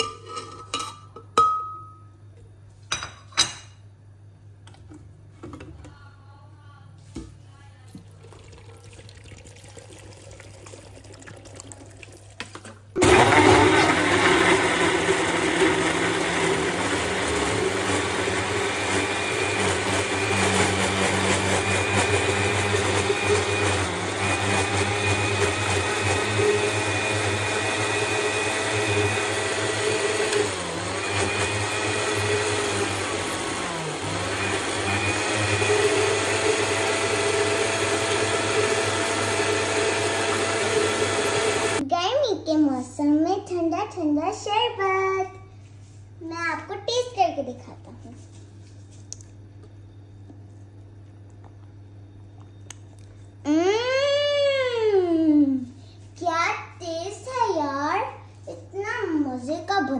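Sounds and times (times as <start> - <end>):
electric blender running: 13.0 - 41.8.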